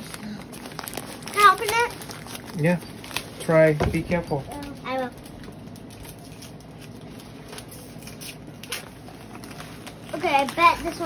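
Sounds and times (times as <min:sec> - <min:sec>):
newspaper rustling and crinkling: 0:00.0 - 0:11.0.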